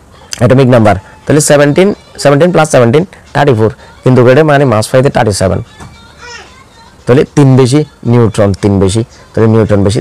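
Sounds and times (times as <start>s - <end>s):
man speaking: 0.4s - 5.7s, 7.1s - 10.0s.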